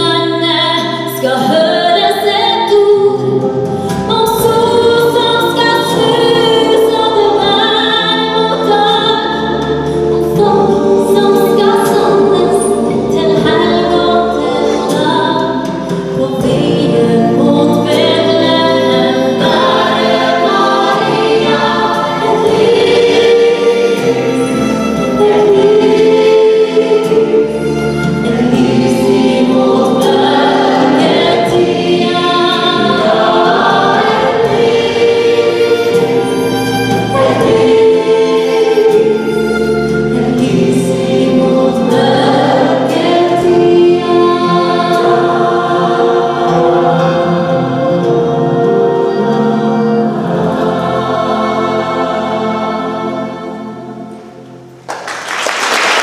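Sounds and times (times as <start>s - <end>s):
gospel choir singing: 0.0s - 56.0s.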